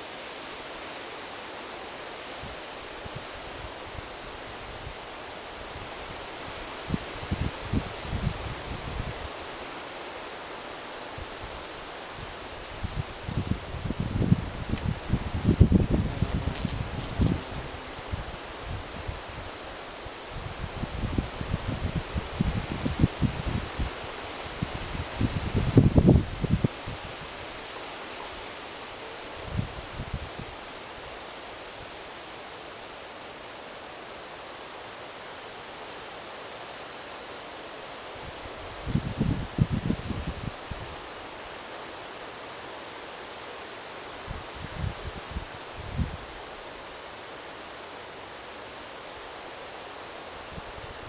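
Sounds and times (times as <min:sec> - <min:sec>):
steady outdoor hiss: 0:00.0 - 0:51.0
wind buffeting microphone: 0:12.2 - 0:19.6, 0:20.3 - 0:27.2, 0:38.7 - 0:41.0.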